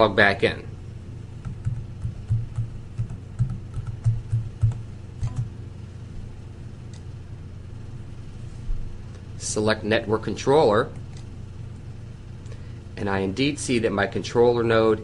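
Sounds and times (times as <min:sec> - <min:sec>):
steady low hum: 0:00.0 - 0:15.0
computer keyboard typing: 0:01.4 - 0:05.5.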